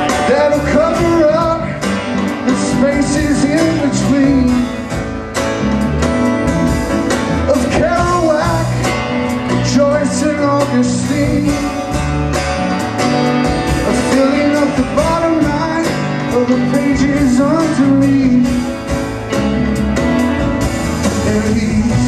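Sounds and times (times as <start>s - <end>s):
acoustic guitar: 0.0s - 22.0s
bass guitar: 0.0s - 22.0s
electric guitar lead: 0.0s - 22.0s
steady drum beat: 0.0s - 22.0s.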